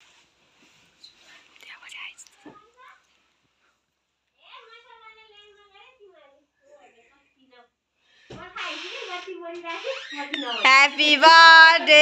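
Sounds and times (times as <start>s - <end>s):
quiet whispering: 1.0s - 3.1s.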